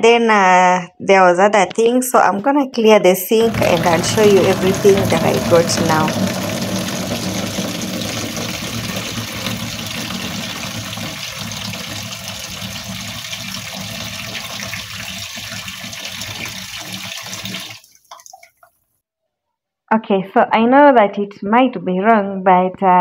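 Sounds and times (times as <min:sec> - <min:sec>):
tap water splashing into basin: 0:03.4 - 0:18.8.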